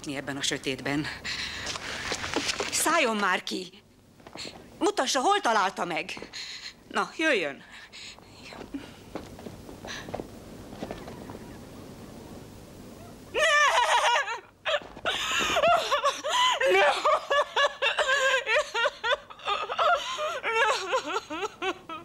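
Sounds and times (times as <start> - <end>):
low rustling noise: 0.7 - 3.2, 7.9 - 13.4
person wailing and sobbing: 13.4 - 22.0.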